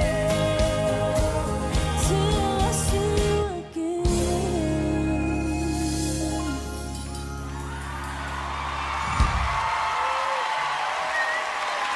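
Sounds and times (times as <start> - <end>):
audience cheering and applauding: 7.2 - 11.9
whoops: 7.3 - 11.9.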